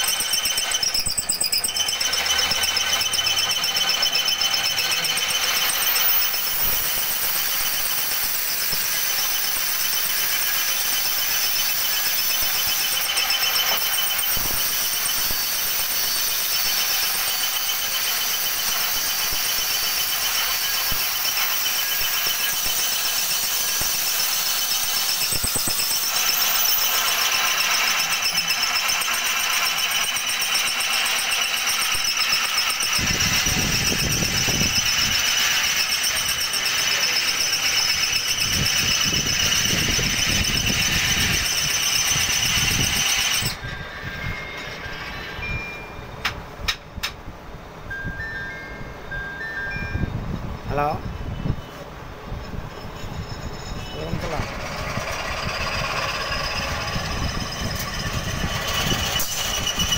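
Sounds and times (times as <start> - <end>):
angle grinder cutting steel: 0.0 - 45.8, 52.5 - 59.9.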